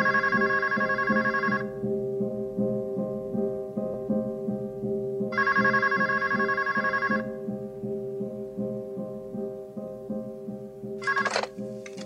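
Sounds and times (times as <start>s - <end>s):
telephone ringing: 0.0s - 1.7s, 5.4s - 7.3s, 11.0s - 12.0s.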